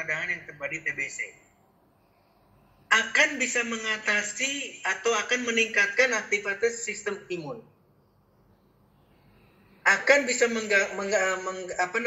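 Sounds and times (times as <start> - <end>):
man speaking: 2.9 - 7.7.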